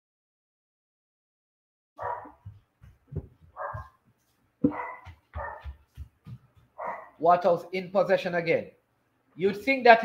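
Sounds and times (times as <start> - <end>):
dog barking: 2.0 - 2.5, 3.5 - 4.0, 4.6 - 5.8, 6.8 - 7.2.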